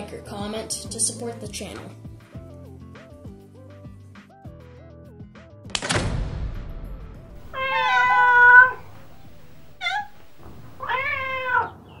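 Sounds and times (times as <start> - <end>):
sudden crash-like hit: 5.8 - 10.8
cat meowing: 7.4 - 11.9.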